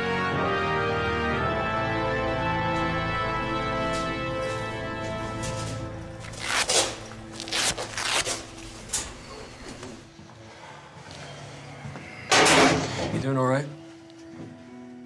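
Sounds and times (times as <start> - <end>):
film score music: 0.0 - 15.0
clothing rustling: 4.0 - 10.0.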